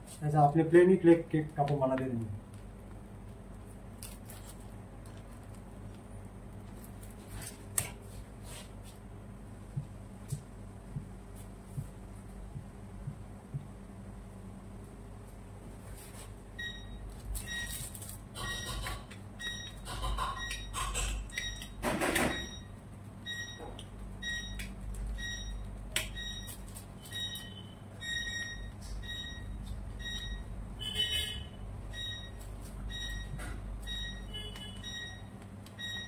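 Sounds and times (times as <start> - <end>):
low steady hum: 0.0 - 36.0.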